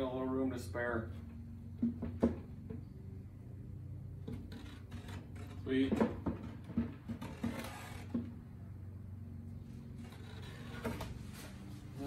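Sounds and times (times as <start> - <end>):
steady low hum: 0.0 - 12.0
wooden board knocking and scraping: 1.8 - 2.9, 4.3 - 8.4.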